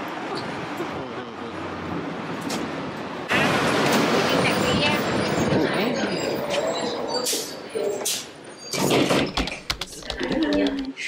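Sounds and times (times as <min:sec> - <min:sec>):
passing traffic: 0:00.0 - 0:08.6
people talking: 0:00.9 - 0:01.6, 0:04.3 - 0:06.8, 0:09.8 - 0:11.0.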